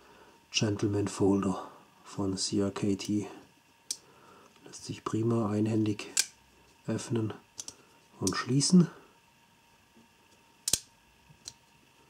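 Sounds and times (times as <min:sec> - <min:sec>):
folding knife clicking: 0:10.6 - 0:11.6.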